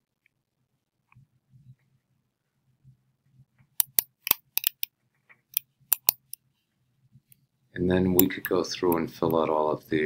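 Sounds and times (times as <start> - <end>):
computer mouse clicks: 3.8 - 4.9.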